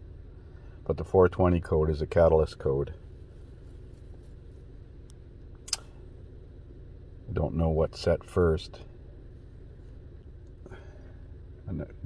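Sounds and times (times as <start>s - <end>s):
car engine idling: 0.0s - 12.0s
short click: 5.6s - 5.9s.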